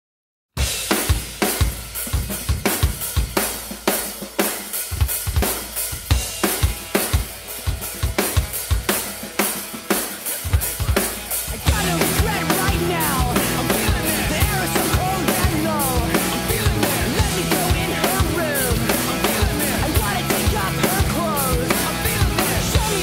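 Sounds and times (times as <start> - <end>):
band recording: 0.6 - 23.0
rock drum groove: 0.6 - 23.0.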